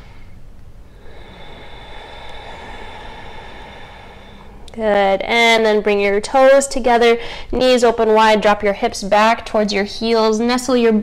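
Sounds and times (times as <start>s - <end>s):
person breathing deeply: 0.0s - 6.6s
room noise: 0.0s - 10.7s.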